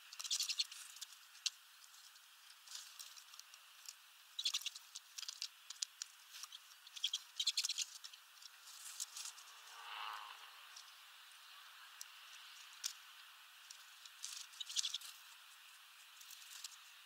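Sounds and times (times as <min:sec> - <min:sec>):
bird pecking in seeds: 0:00.1 - 0:09.5, 0:13.6 - 0:15.3.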